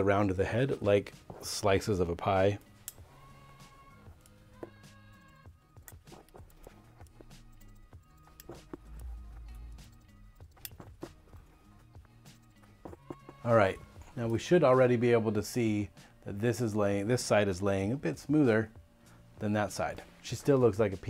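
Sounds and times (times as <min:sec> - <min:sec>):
quiet background music: 0:00.0 - 0:21.0
haircutting shears snipping: 0:02.6 - 0:14.4.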